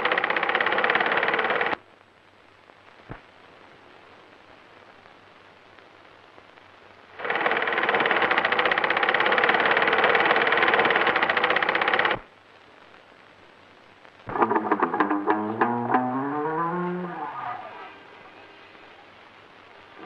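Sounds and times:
sewing machine clatter: 0.0 - 1.8, 7.2 - 12.2
guitar music: 14.3 - 18.4.

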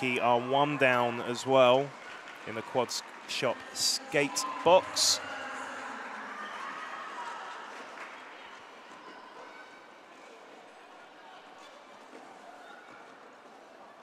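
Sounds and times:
murmur of spectators: 0.0 - 14.0
skaters on track: 0.0 - 14.0.

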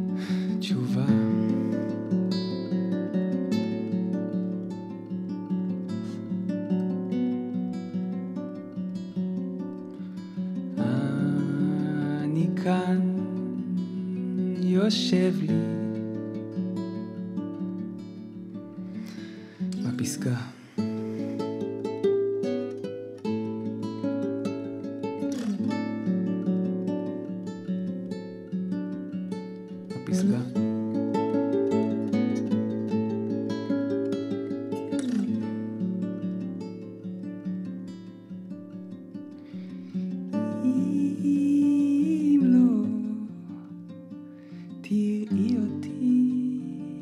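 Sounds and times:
acoustic guitar strummed chords: 0.0 - 47.0.

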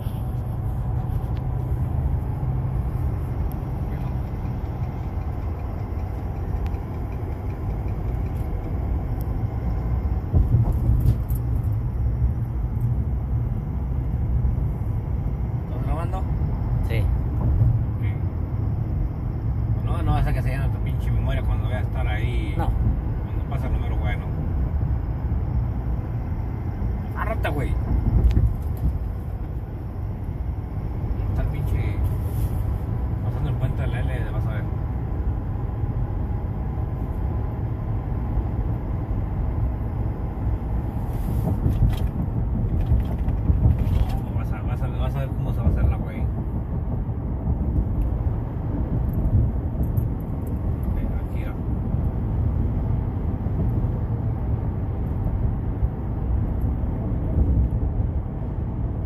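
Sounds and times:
road and drivetrain rumble in cabin: 0.0 - 59.0.

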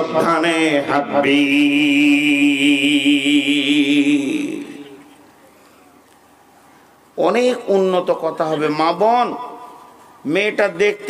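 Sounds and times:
man chanting through microphone: 0.0 - 5.0, 7.2 - 11.0.

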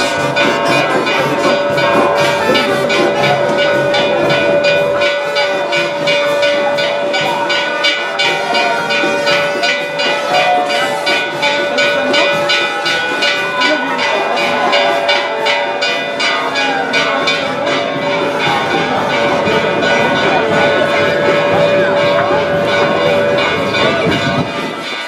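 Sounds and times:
brass playing: 0.0 - 6.0
drums keeping quick beat: 0.0 - 25.0.

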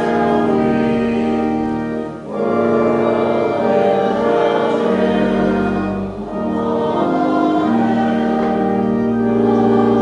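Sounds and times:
church organ chords: 0.0 - 10.0.

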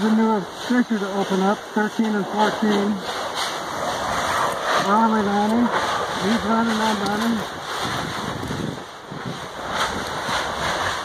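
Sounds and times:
steam venting with rushing hiss: 0.0 - 11.0
man's voice: 4.8 - 7.5.

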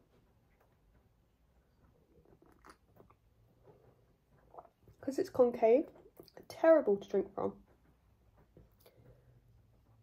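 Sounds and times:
sipping and swallowing: 2.2 - 3.3, 4.4 - 5.0
soft mouth clicks: 2.4 - 3.1.

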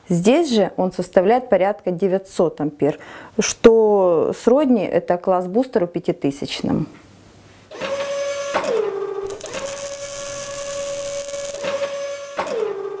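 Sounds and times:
small electric motor whirring: 9.3 - 11.7.

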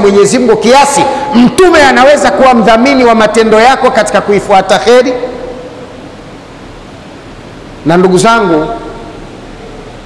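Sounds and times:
man's voice: 0.0 - 5.4
steady background hiss: 0.0 - 10.0.

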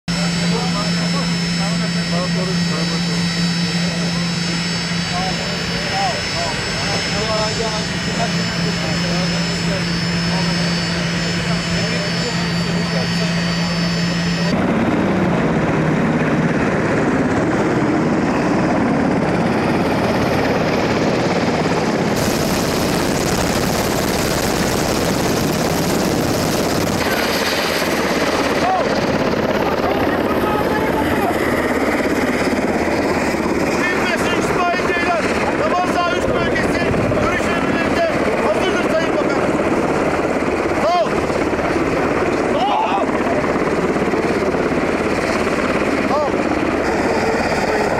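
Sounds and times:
jet engines whining: 0.1 - 47.9
steady rushing noise: 0.7 - 47.9.

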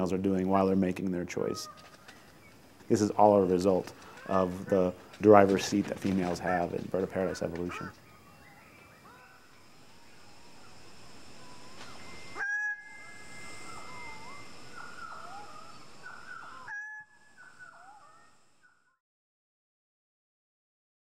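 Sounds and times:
forest background: 0.0 - 19.0
bird calling: 0.6 - 19.0.

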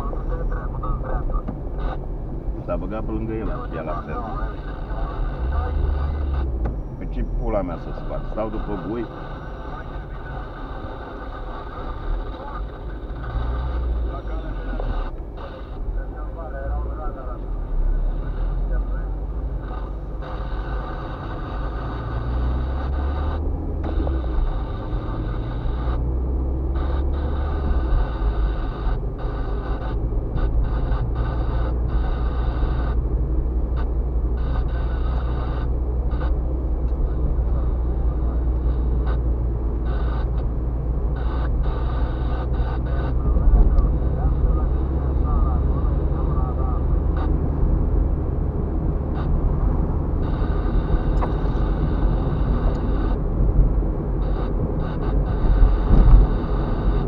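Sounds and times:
indistinct voices: 0.0 - 26.0, 41.1 - 48.3
car engine and road rumble: 0.0 - 57.0.

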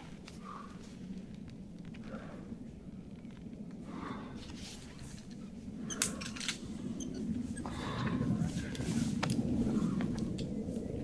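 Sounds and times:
low background rumble: 0.0 - 11.0
metal carabiners clinking: 5.0 - 7.2.

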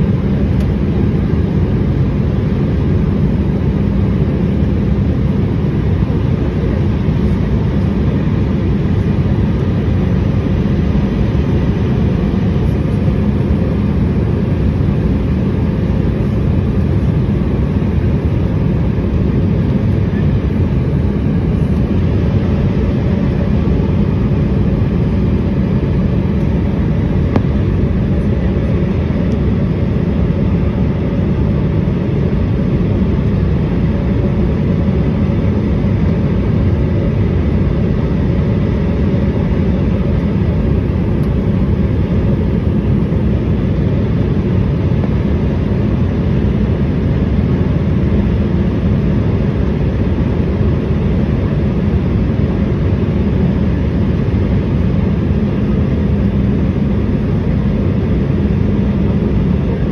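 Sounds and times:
jet engine and airflow rumble: 0.0 - 59.9.

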